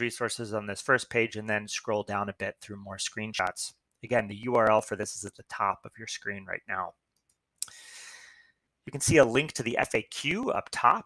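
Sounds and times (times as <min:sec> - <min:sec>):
mouth click: 0:07.2 - 0:07.8
person breathing in: 0:07.6 - 0:08.6.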